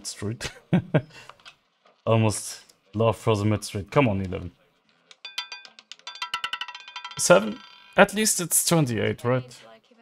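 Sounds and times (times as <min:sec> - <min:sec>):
roulette ball clattering: 0:05.1 - 0:08.1.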